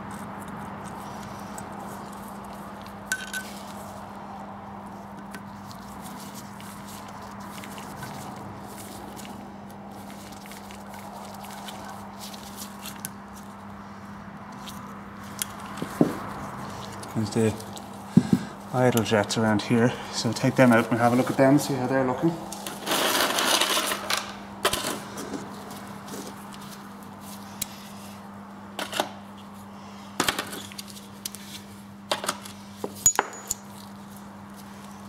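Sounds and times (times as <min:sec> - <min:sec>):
steady low hum: 0:00.0 - 0:22.9.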